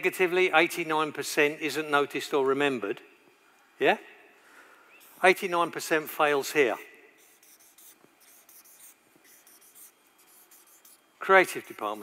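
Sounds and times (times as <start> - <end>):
marker pen scratching on paper: 5.0 - 5.8, 7.2 - 12.0.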